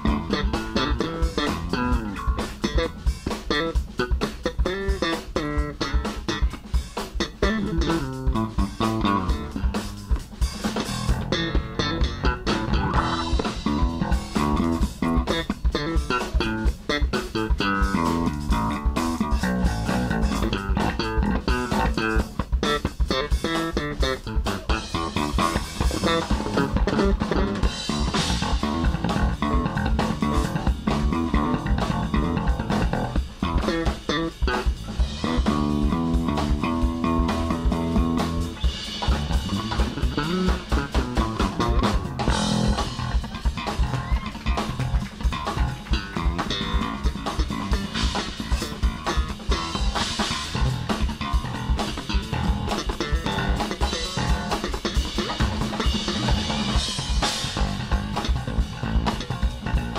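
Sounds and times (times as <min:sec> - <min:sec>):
drum kit: 0:00.0 - 0:59.9
electric bass guitar line: 0:00.0 - 0:59.9
funk band music: 0:00.0 - 0:59.9.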